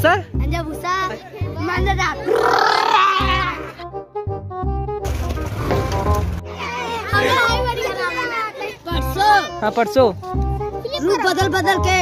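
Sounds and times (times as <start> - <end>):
children shouting and laughing: 0.5 - 3.8, 6.5 - 9.6, 10.7 - 11.8.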